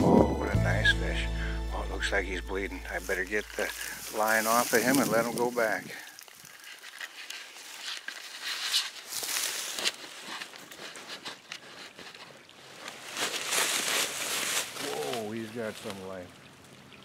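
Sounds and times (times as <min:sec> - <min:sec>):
dry grass rustling and crackling: 0:01.8 - 0:16.3.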